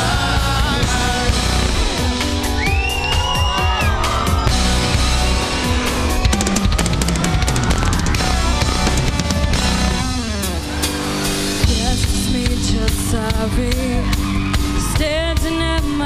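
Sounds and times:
rapid drum hits: 0:00.0 - 0:13.5
rock band playing: 0:00.0 - 0:16.0
long slowly rising tone: 0:01.6 - 0:11.6.

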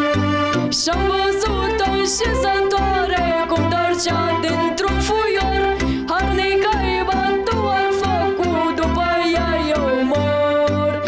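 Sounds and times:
electronic keyboard accompaniment: 0:00.0 - 0:11.0
pulsing bass: 0:00.0 - 0:11.0
boy singing folk song: 0:00.8 - 0:11.0.

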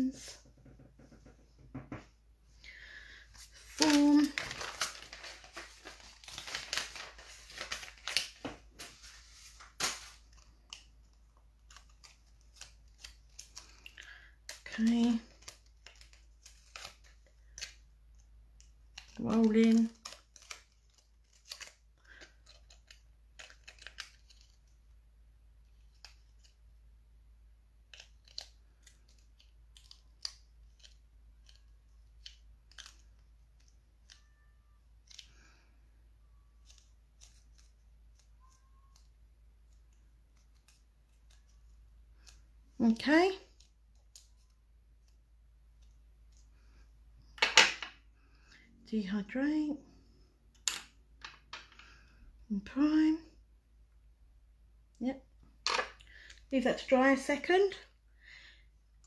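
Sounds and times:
person speaking: 0:00.0 - 0:00.4, 0:03.4 - 0:06.0, 0:14.5 - 0:15.5, 0:19.0 - 0:20.1, 0:42.8 - 0:43.7, 0:52.5 - 0:53.4.

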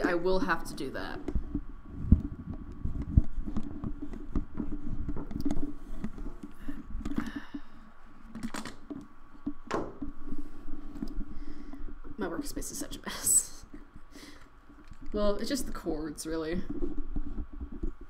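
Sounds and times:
knocks and thumps on desk: 0:09.6 - 0:10.1.

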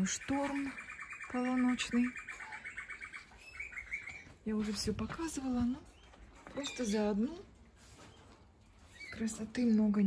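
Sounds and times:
bird trilling: 0:00.0 - 0:04.5
bird chirps: 0:00.0 - 0:04.9.

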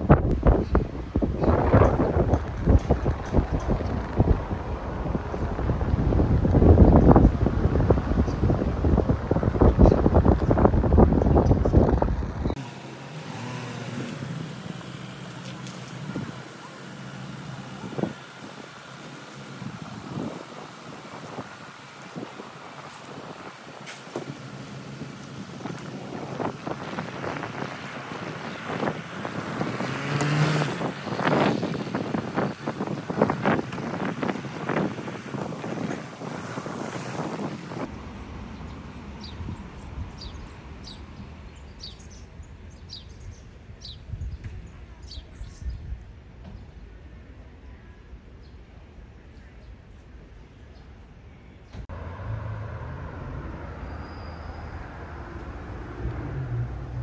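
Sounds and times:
wind buffeting microphone: 0:00.0 - 0:12.6, 0:13.4 - 0:46.9.

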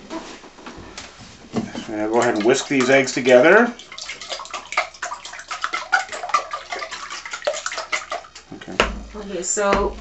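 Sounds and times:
eggs sloshing: 0:01.4 - 0:10.0.

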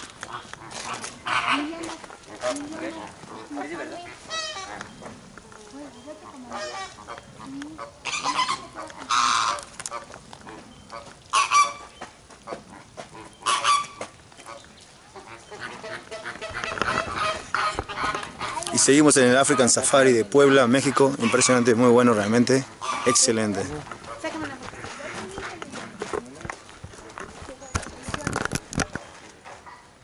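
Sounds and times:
flamingos honking: 0:00.0 - 0:29.0.

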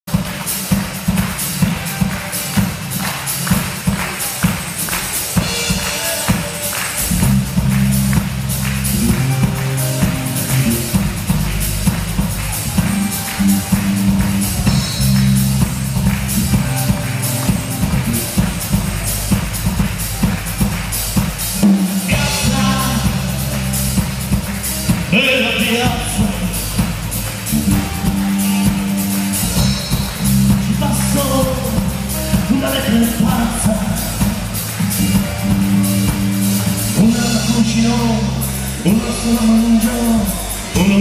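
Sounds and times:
drum kit beat: 0:00.0 - 0:41.0
low bass notes: 0:07.0 - 0:41.0.

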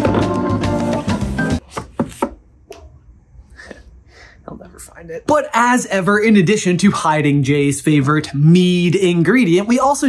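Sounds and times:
organ music: 0:00.0 - 0:01.6.

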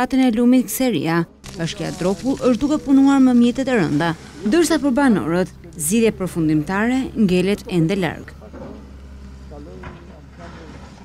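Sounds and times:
excavator diesel engine running: 0:01.5 - 0:11.0.

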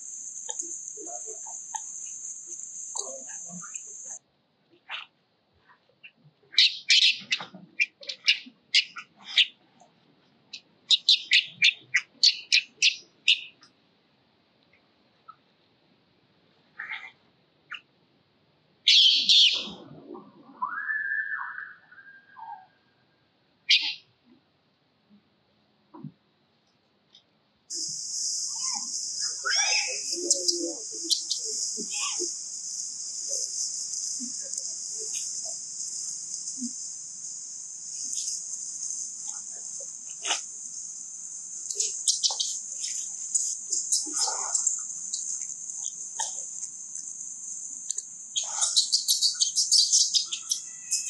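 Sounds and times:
high-pitched insect drone: 0:00.0 - 0:04.2, 0:27.7 - 0:51.0
infant monkey screaming: 0:28.5 - 0:32.4, 0:41.7 - 0:44.8, 0:48.4 - 0:51.0
infant monkey squeaking: 0:28.5 - 0:32.4, 0:41.7 - 0:46.4, 0:48.4 - 0:51.0.

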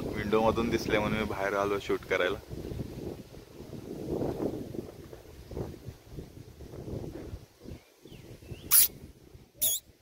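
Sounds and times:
monkey squealing: 0:08.7 - 0:08.9, 0:09.6 - 0:09.8.

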